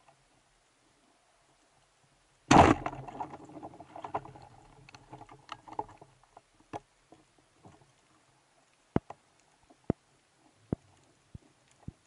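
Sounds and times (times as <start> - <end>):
loud underwater bang: 2.5 - 3.1
sharp underwater clicks and knocks: 2.5 - 7.9, 8.9 - 12.0.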